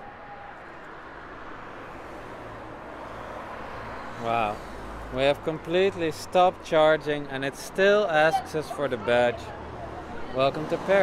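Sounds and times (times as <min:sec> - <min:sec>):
street traffic rush: 0:00.0 - 0:11.0.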